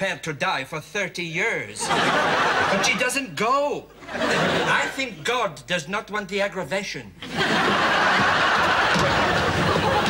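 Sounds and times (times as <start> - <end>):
audience laughing: 1.8 - 5.2, 7.2 - 10.0.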